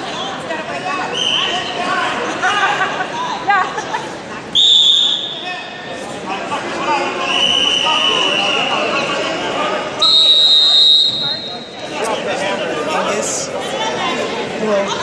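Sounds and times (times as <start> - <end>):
spectators chatting and shouting: 0.0 - 15.0
referee's whistle blasts: 4.6 - 5.8, 7.2 - 8.7, 10.0 - 11.8.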